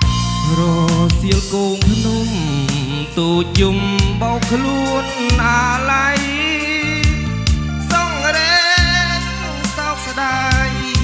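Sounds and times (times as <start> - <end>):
electronic keyboard accompaniment: 0.0 - 11.0
man singing into a microphone: 0.0 - 11.0.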